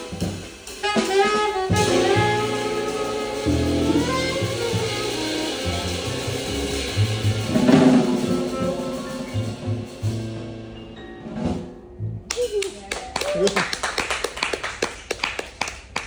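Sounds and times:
drum and cymbal hit: 0:00.0 - 0:10.8
jazz quartet playing: 0:00.0 - 0:12.3.

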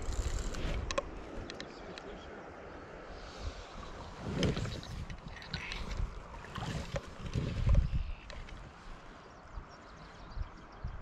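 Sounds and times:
wind gusting on microphone: 0:00.0 - 0:11.0
water sloshing and splashing: 0:03.7 - 0:09.2.

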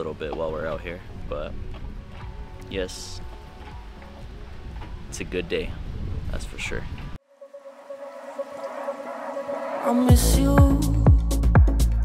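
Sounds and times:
person singing: 0:08.0 - 0:12.0.

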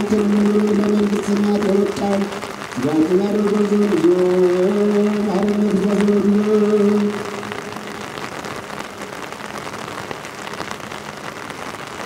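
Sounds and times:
deep male chanting: 0:00.0 - 0:07.5
steady rain: 0:00.0 - 0:12.0.

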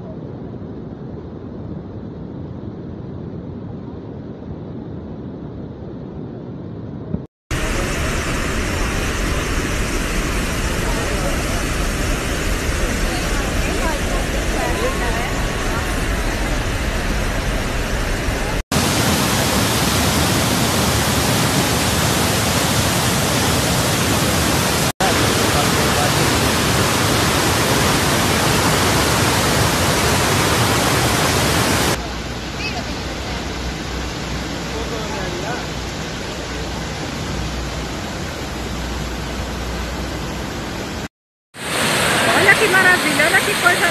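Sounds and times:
waterfall rushing: 0:07.5 - 0:43.9.

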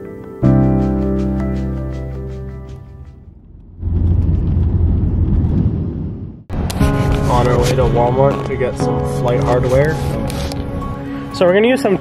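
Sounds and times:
music: 0:00.0 - 0:03.4, 0:06.5 - 0:12.0.

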